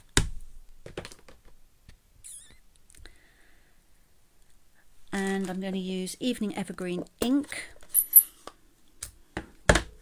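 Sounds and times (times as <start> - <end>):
wavering high squeak: 2.2 - 2.6.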